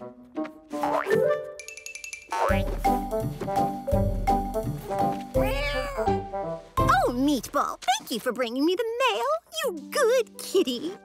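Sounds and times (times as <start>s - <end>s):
cartoon soundtrack music: 0.0s - 7.5s.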